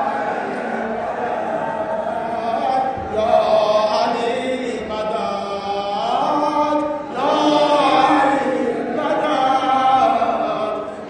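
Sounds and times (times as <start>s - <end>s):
crowd of men chanting: 0.0s - 11.0s.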